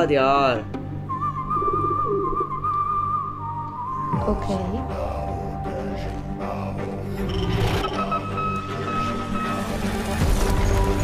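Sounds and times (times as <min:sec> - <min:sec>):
long whistled note: 0:01.1 - 0:04.4.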